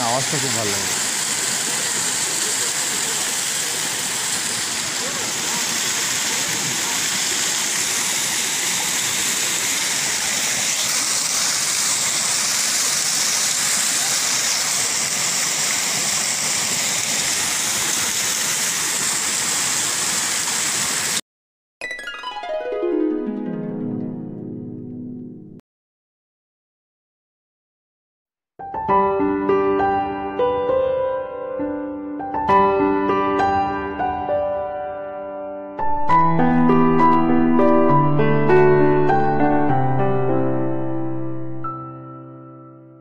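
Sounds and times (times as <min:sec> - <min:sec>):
waterfall rushing over rock: 0:00.0 - 0:21.2
plucked-string music: 0:21.8 - 0:25.6.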